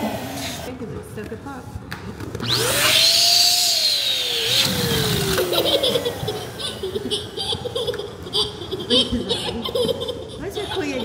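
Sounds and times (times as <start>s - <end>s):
balloon inflator motor whining: 0.0s - 0.7s, 2.4s - 8.7s
laughter: 5.4s - 11.0s.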